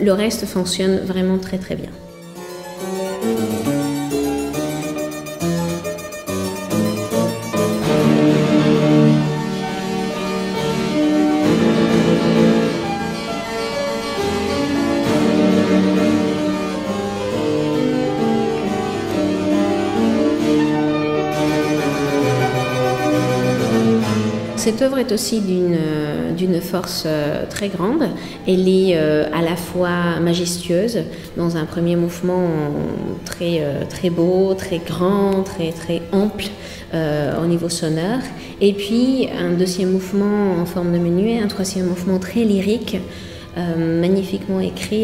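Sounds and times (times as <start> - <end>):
fortepiano: 0.0 - 45.0
harpsichord: 0.4 - 30.6.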